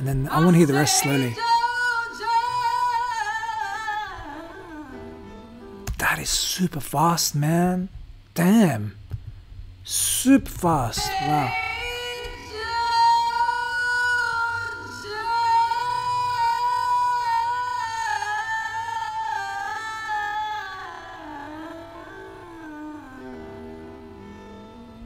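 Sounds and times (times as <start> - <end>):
woman singing: 0.0 - 5.6, 10.5 - 25.0
quiet accompaniment: 0.0 - 25.0.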